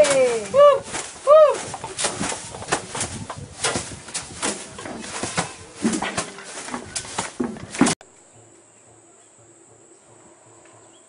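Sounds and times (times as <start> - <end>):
dry grass swishing and slapping: 0.0 - 8.0.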